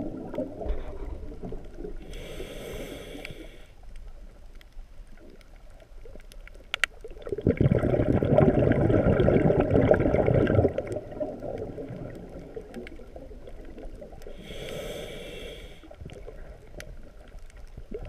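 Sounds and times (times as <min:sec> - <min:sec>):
hissing inhalation: 0:02.1 - 0:03.8, 0:14.4 - 0:16.0
bubbly underwater exhalation: 0:07.2 - 0:12.7.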